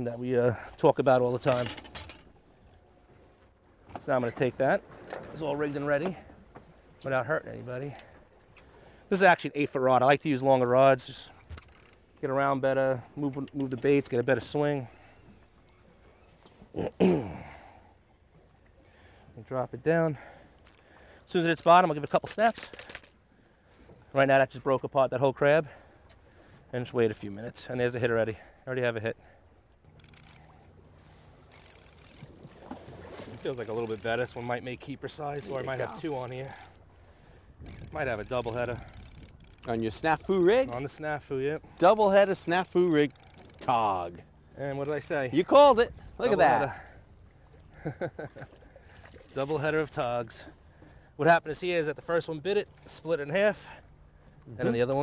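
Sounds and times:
boat at sea background noise: 0.0s - 55.0s
open water: 0.0s - 55.0s
wind: 0.0s - 55.0s.

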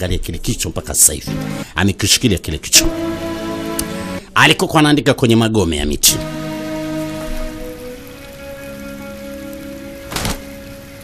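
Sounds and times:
slow held orchestral chords: 1.3s - 1.7s, 2.8s - 4.4s, 6.2s - 11.0s
steady hiss: 6.0s - 11.0s.

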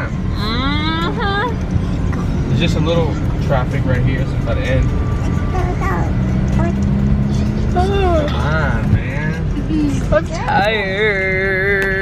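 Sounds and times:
engine and tyres rumbling: 0.0s - 12.0s.

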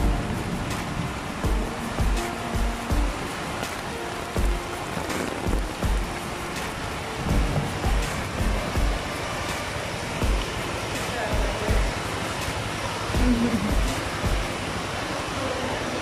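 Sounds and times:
wind buffeting microphone: 0.0s - 15.1s
rain on concrete: 0.0s - 16.0s.

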